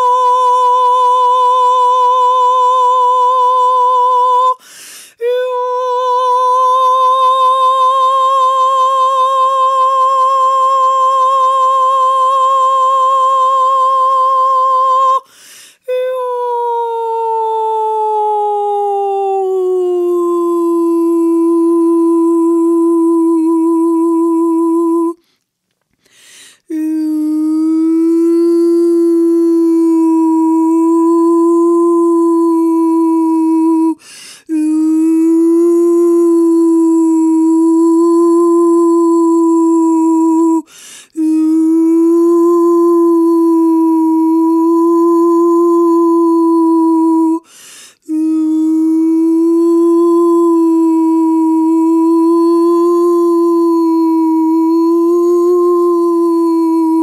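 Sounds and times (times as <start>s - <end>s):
woman humming a long note: 0.0s - 4.6s, 5.2s - 15.3s, 15.9s - 25.3s, 26.6s - 57.0s
quick breath: 4.6s - 5.2s, 15.2s - 15.8s, 25.2s - 26.7s, 34.0s - 34.5s, 40.7s - 41.2s, 47.4s - 48.0s.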